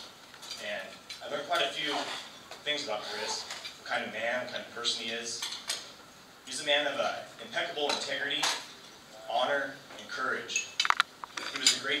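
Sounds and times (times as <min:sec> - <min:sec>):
voices in a room: 0:00.0 - 0:12.0
cutlery and dishes clinking: 0:10.6 - 0:11.9.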